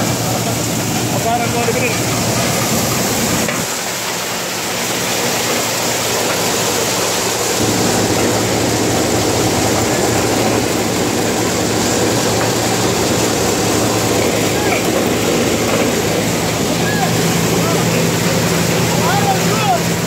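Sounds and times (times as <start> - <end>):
dried peas rushing through machine: 0.0 - 20.0
harvesting machine engine hum: 0.0 - 20.0.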